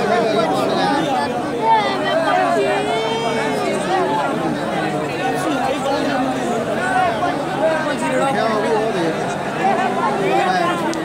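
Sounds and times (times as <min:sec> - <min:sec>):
crowd of men talking and calling: 0:00.0 - 0:11.0.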